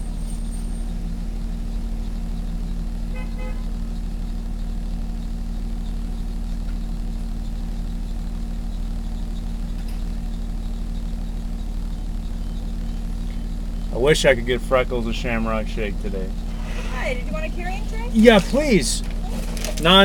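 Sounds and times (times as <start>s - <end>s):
car engine idling: 0.0s - 20.0s.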